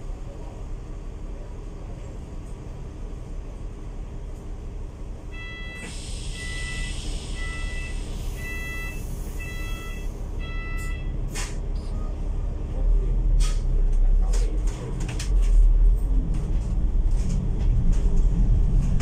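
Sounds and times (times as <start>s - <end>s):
diesel engine idling: 3.1s - 13.2s
bus warning beeps: 5.3s - 12.4s
air hiss from bus: 5.8s - 9.7s.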